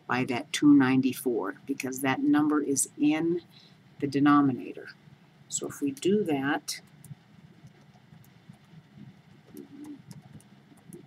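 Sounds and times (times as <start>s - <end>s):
calculator keys clicking: 9.4s - 11.0s.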